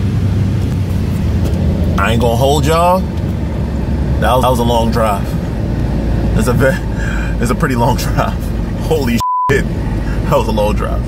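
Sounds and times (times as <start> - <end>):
car engine and road noise: 0.0 - 11.0.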